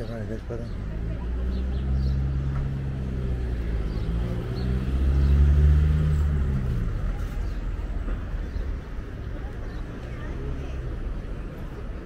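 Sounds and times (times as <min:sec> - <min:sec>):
vehicle engine passing by: 0:00.3 - 0:09.2.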